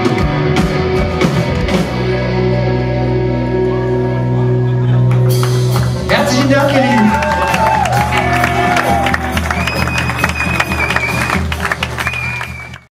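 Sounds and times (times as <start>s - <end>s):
audience clapping and cheering: 5.0s - 12.9s.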